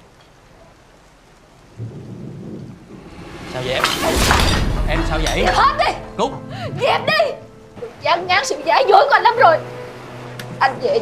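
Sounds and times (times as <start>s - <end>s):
steady soft hiss: 0.0s - 6.7s
low rumble: 2.6s - 6.8s.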